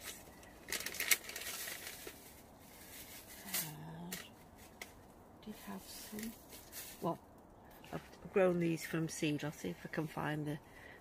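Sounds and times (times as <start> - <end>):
rustling handling noises: 0.0 - 8.9.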